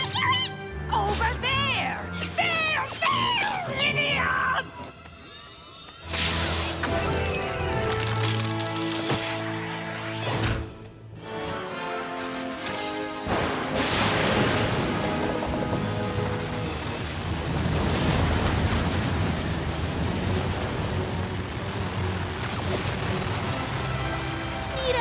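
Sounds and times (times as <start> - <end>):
background music: 0.0 - 25.0.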